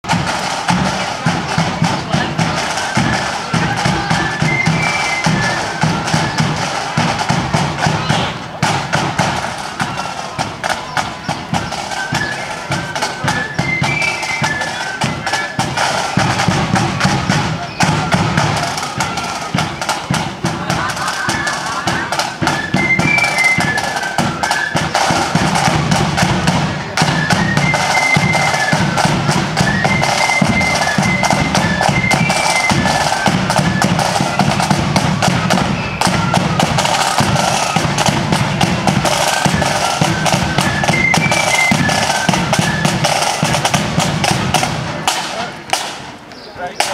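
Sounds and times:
flutes playing melody: 0:00.0 - 0:46.9
side drums: 0:00.0 - 0:46.9.

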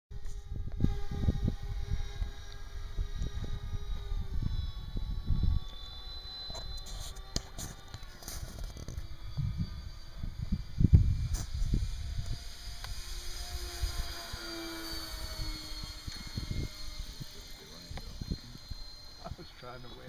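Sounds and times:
wind buffeting microphone: 0:00.2 - 0:06.0, 0:06.6 - 0:19.5
model plane motors whining: 0:00.2 - 0:20.0.

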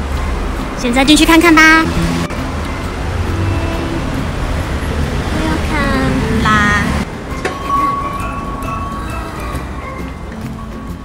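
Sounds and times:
passing cars rumbling: 0:00.0 - 0:11.0.

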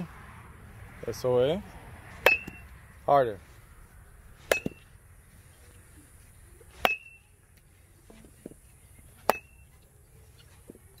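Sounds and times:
metal bat pinging ball: 0:02.2 - 0:02.7, 0:04.5 - 0:04.9, 0:06.8 - 0:07.2, 0:09.2 - 0:09.6.

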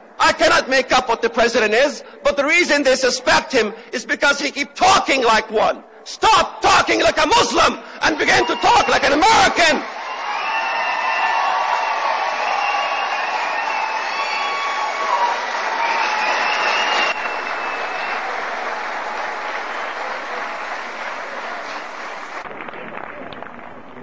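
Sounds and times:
audience applauding and cheering: 0:08.1 - 0:24.0.

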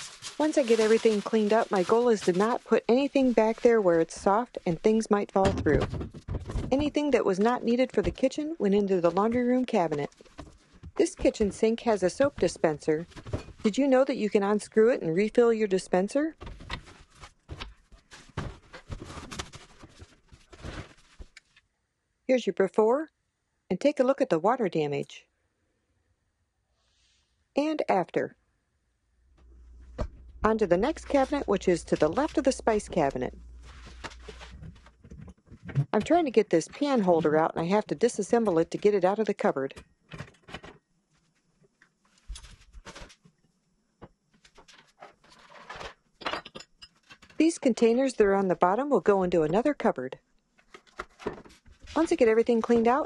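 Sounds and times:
plastic bottles knocking and rustling: 0:00.0 - 0:04.4, 0:05.4 - 0:08.3, 0:09.0 - 0:13.7, 0:16.4 - 0:21.4, 0:29.5 - 0:37.5, 0:50.6 - 0:53.0.

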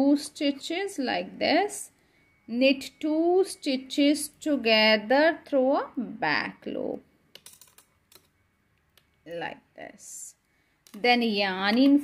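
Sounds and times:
knitting needles clicking: 0:07.3 - 0:09.2.

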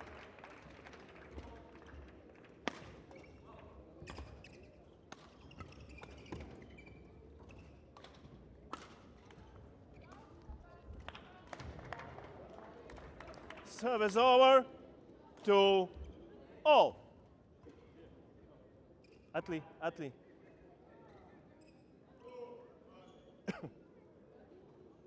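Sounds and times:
low voices in a hall: 0:00.0 - 0:25.0
rackets hitting shuttlecock: 0:08.0 - 0:09.2.

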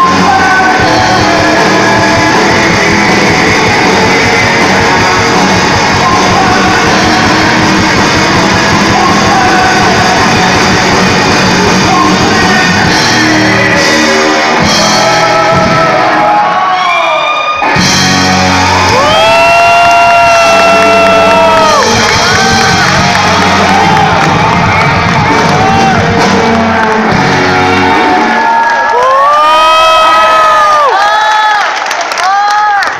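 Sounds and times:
rock band sustained chord: 0:00.0 - 0:16.6, 0:17.8 - 0:28.6
audience whooping and cheering: 0:13.6 - 0:32.9.

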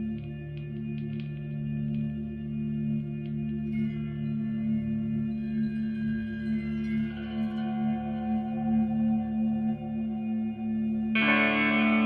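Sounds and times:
electric guitar drone: 0:00.0 - 0:12.0.

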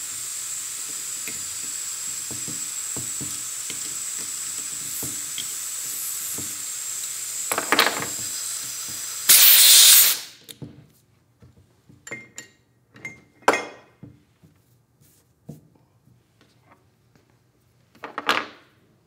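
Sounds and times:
compressed air hissing: 0:00.0 - 0:10.4
loud blast of air venting: 0:04.8 - 0:10.4.

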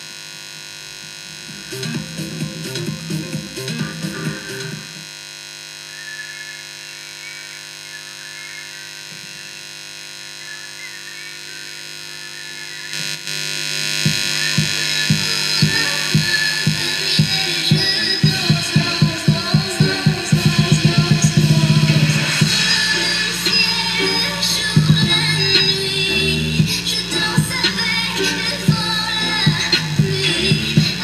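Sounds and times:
steady electrical hum: 0:00.0 - 0:31.0
song through speaker: 0:01.2 - 0:05.2, 0:12.8 - 0:31.0
drum beat: 0:01.5 - 0:05.1, 0:14.0 - 0:31.0.

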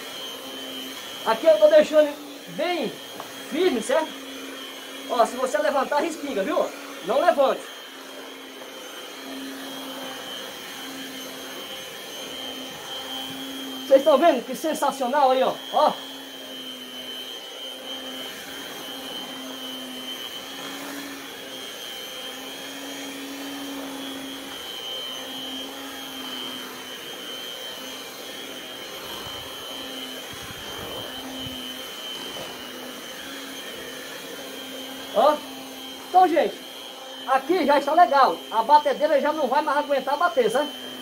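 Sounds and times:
electric mixer humming: 0:00.0 - 0:41.0.

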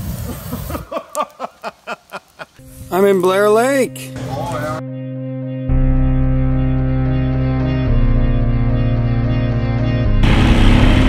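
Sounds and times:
campfire flaring whoosh: 0:00.0 - 0:01.1
person laughing: 0:00.2 - 0:02.6.

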